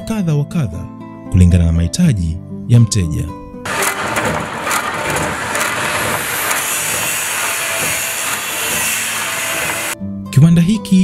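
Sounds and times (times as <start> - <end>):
power hacksaw cutting metal: 3.7 - 10.0.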